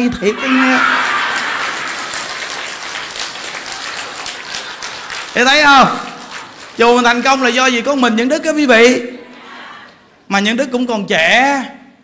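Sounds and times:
audience applauding: 0:00.7 - 0:07.7.

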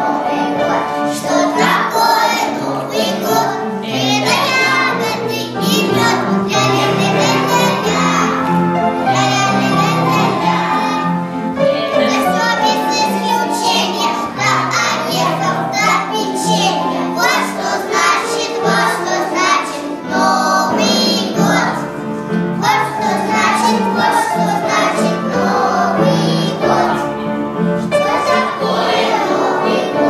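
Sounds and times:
children singing together: 0:00.0 - 0:30.0.

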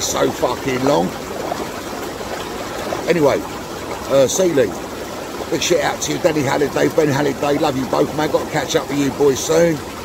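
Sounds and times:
hot tub water bubbling: 0:00.0 - 0:10.0.

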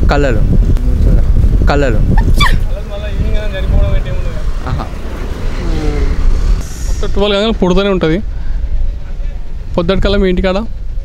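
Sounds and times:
road traffic: 0:00.0 - 0:11.0
wind rumbling on microphone: 0:00.0 - 0:11.0.

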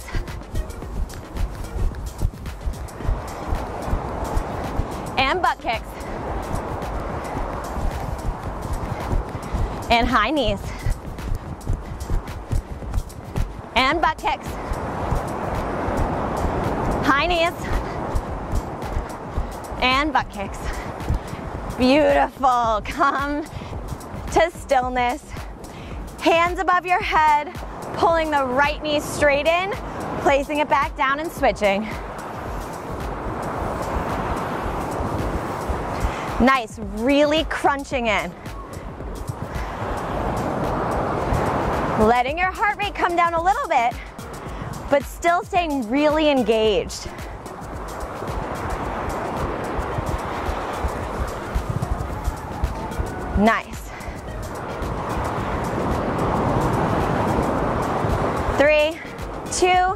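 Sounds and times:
ocean surf: 0:00.0 - 0:59.9
wind rumbling on microphone: 0:00.0 - 0:59.9
surf breaking over rocks: 0:14.2 - 0:22.2, 0:31.5 - 0:37.1, 0:38.5 - 0:42.2, 0:47.2 - 0:59.5.

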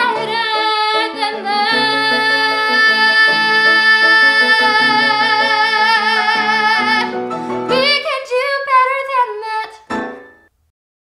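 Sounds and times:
woman singing solo: 0:00.0 - 0:09.8.

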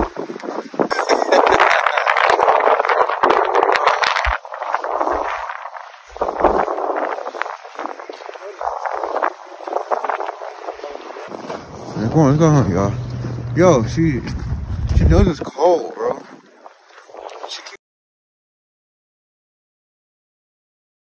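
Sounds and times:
jacket rustling against microphone: 0:00.0 - 0:13.6.

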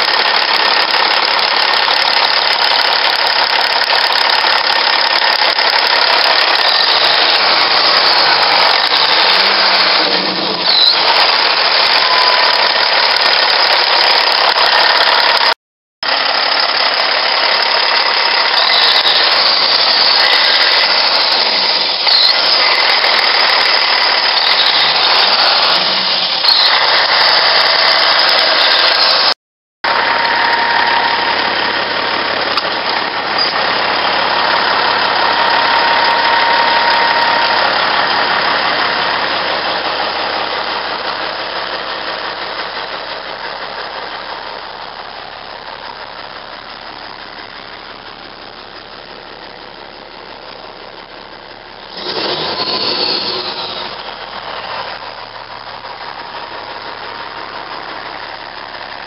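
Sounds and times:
diesel engine idling: 0:00.0 - 0:59.0.

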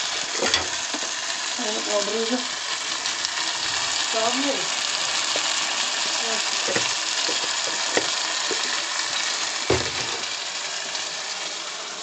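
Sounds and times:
potatoes sizzling in pot: 0:00.0 - 0:12.0.

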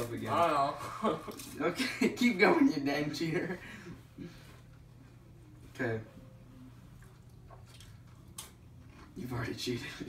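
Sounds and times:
crackers being bitten and chewed: 0:07.0 - 0:09.6.

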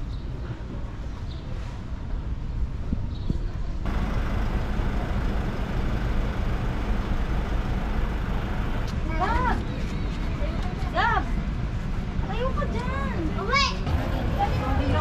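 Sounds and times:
road traffic rumble: 0:03.8 - 0:09.6.

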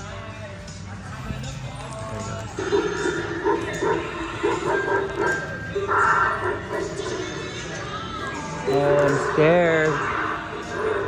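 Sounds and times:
animatronic yelping cries: 0:02.6 - 0:11.0.

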